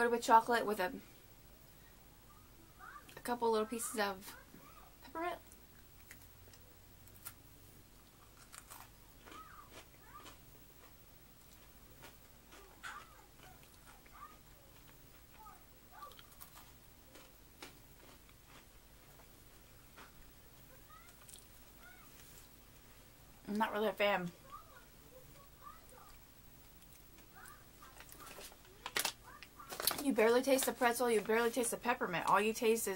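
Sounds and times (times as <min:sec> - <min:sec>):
chewing crunches: 0:08.0 - 0:19.3, 0:20.9 - 0:22.4, 0:25.9 - 0:30.0.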